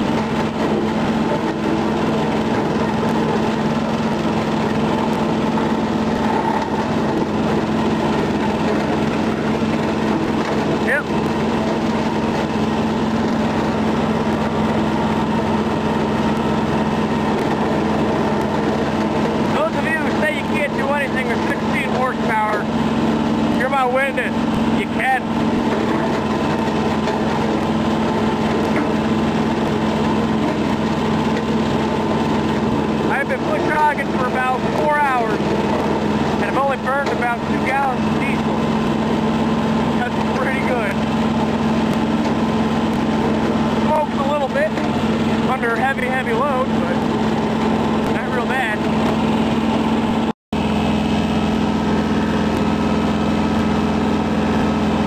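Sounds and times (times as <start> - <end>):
rotary cutter through brush: 0.0 - 55.0
tractor diesel engine running: 0.0 - 55.0.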